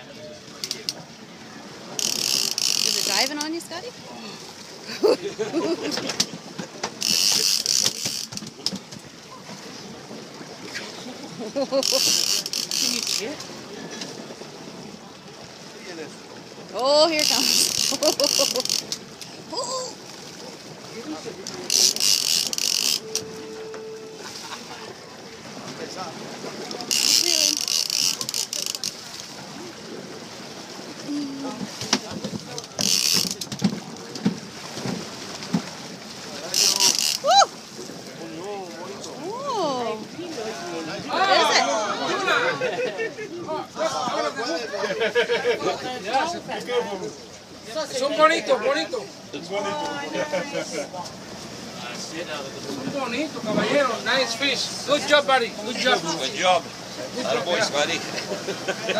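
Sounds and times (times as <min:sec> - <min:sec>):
fishing reel ratcheting buzz: 0:02.0 - 0:03.5, 0:07.0 - 0:08.5, 0:11.8 - 0:13.3, 0:17.2 - 0:19.0, 0:21.6 - 0:23.2, 0:26.9 - 0:29.0, 0:32.8 - 0:33.5, 0:36.5 - 0:37.3
fish splashing in water: 0:06.0 - 0:14.8, 0:16.6 - 0:38.2
person whooping: 0:37.2 - 0:37.6.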